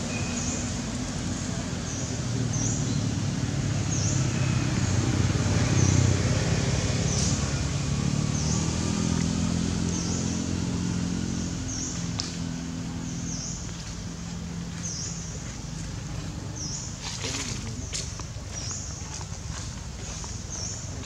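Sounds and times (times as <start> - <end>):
vehicle engine passing by: 0.0 - 21.0.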